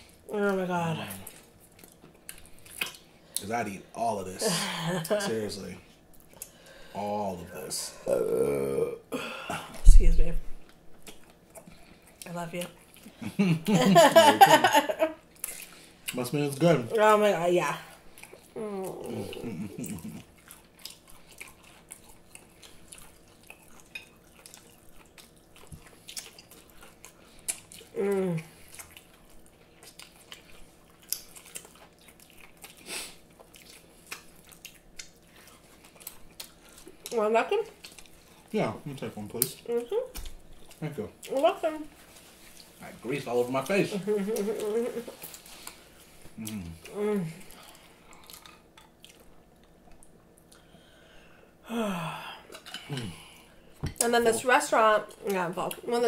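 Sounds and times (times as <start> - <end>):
people chewing: 1.0 - 3.6, 10.6 - 14.6, 15.3 - 17.1, 17.8 - 51.4, 52.3 - 55.9
person burping: 8.0 - 9.6, 18.6 - 20.2.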